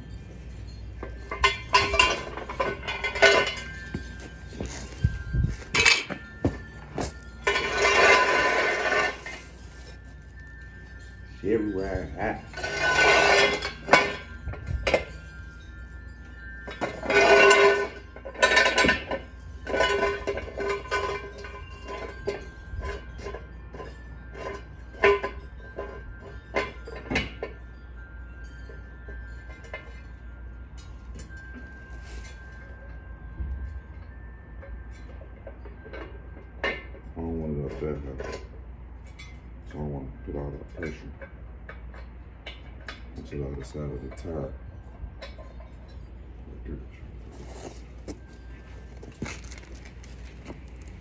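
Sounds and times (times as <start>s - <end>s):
metal clinking and clattering: 0.0s - 39.5s, 45.1s - 51.0s.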